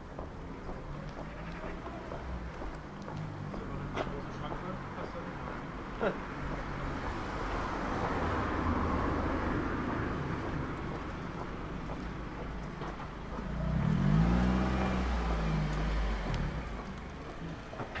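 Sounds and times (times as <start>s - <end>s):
vehicle engine rumbling: 0.0s - 18.0s.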